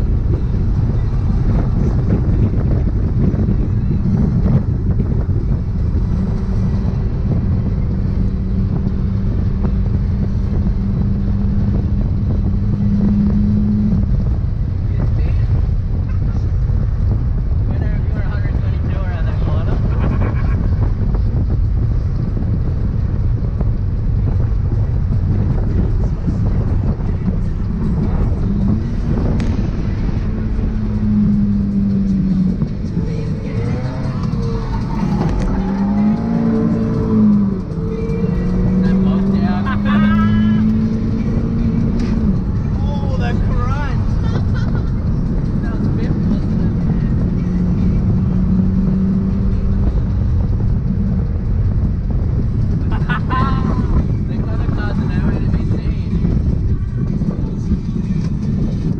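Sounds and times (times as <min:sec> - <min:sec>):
car engine revving: 0:00.0 - 0:58.9
road and wind rumble: 0:00.0 - 0:58.9.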